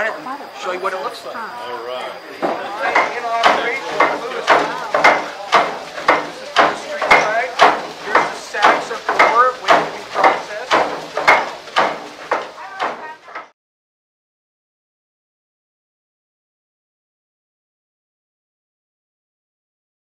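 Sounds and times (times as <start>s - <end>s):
stamp mill stamps dropping: 2.4s - 13.5s.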